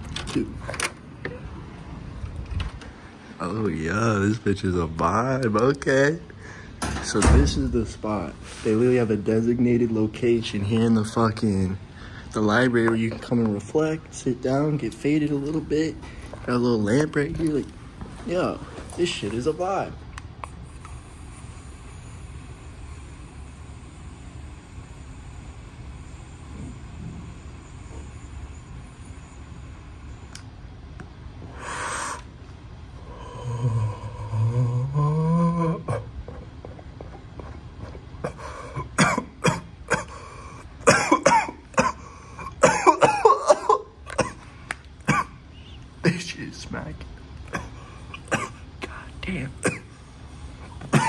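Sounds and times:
breathy exhale: 6.3s - 6.8s, 11.9s - 12.4s, 31.4s - 32.3s, 33.0s - 35.2s
man coughing hard: 35.5s - 45.4s, 47.5s - 49.0s, 49.6s - 50.0s, 50.8s - 51.0s.

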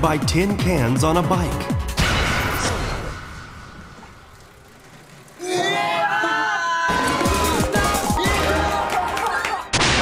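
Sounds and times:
people shrieking and cheering: 5.3s - 10.0s.

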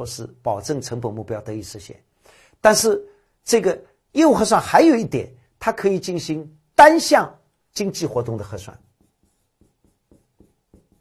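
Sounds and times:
pen tapping on screen: 8.9s - 11.0s.

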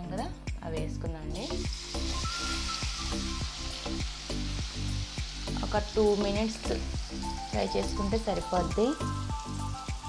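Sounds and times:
background music with steady beat: 0.0s - 10.0s
food sizzling in hot oil: 1.2s - 10.0s.

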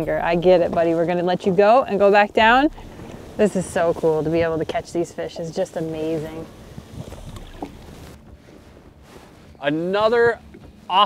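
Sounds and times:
lake water sloshing: 0.0s - 10.8s
wind rumble on microphone: 0.0s - 11.0s.

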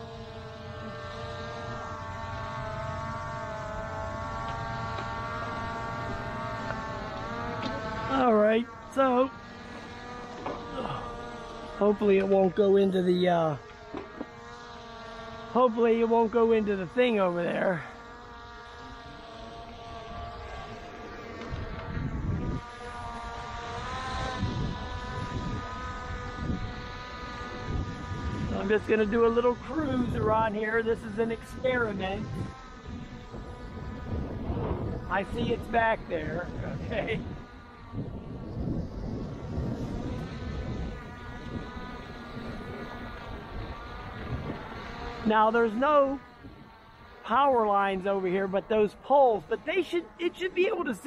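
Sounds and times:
drone propellers whining: 0.0s - 51.0s
wind rumbling on microphone: 19.8s - 48.0s.

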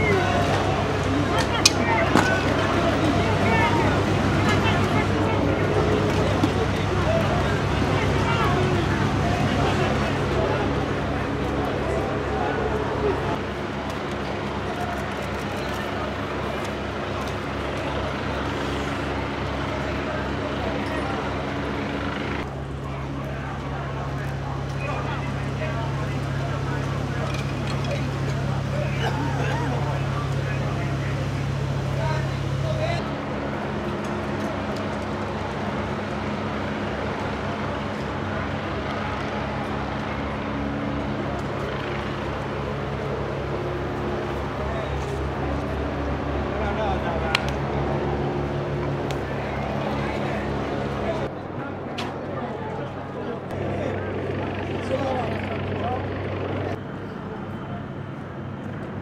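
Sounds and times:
voices and shouting: 0.0s - 33.1s
low mechanical drone: 0.0s - 59.0s.

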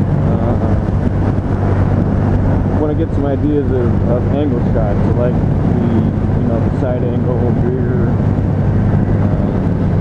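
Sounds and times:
man's voice: 0.0s - 0.9s, 2.8s - 8.2s
motorcycle engine cruising: 0.0s - 10.0s
wind rushing over microphone: 0.0s - 10.0s.

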